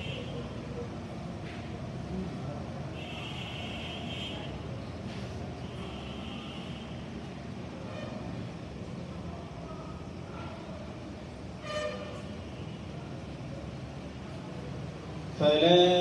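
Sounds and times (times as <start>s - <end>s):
distant road traffic: 0.0s - 16.0s.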